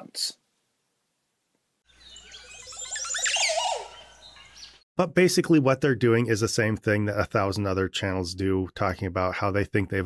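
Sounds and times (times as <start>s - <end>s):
chirping transition effect: 1.9s - 4.8s.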